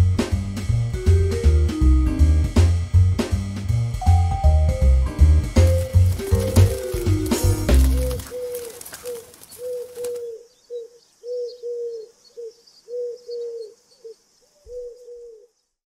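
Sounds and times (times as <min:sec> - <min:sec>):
music: 0:00.0 - 0:08.4
dove cooing: 0:05.6 - 0:15.6.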